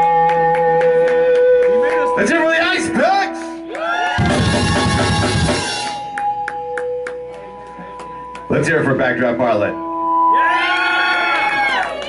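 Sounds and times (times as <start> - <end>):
drum hits: 4.2 - 6.1
live band final chord: 4.2 - 6.2.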